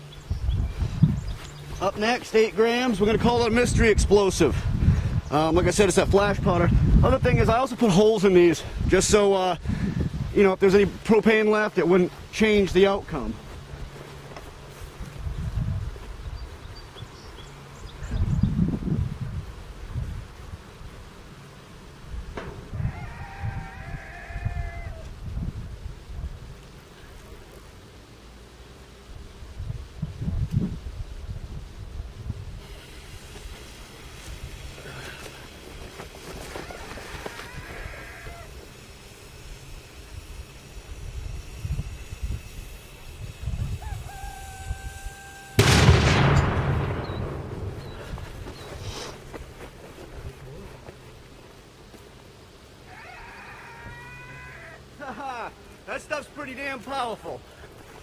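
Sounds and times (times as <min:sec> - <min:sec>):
wind buffeting microphone: 0:00.2 - 0:01.4, 0:03.0 - 0:07.6, 0:08.6 - 0:11.0, 0:15.0 - 0:16.5, 0:18.0 - 0:20.3, 0:22.2 - 0:26.5, 0:40.2 - 0:45.0, 0:45.6 - 0:48.9
sharp explosion with rumble: 0:45.6 - 0:48.2.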